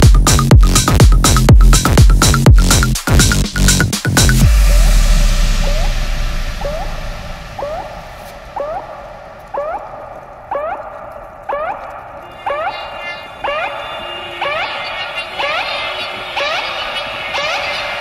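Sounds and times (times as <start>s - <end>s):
held low bass: 0.0s - 10.3s.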